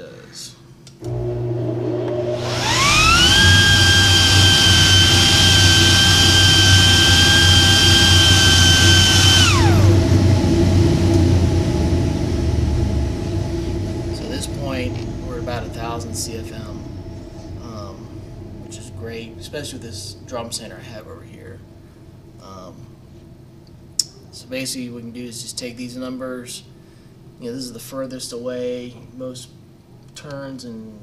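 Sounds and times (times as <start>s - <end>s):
steady low hum: 0.0s - 31.0s
high whine of spinning vane: 0.9s - 29.6s
air rushing from exhaust pipe: 1.1s - 23.6s.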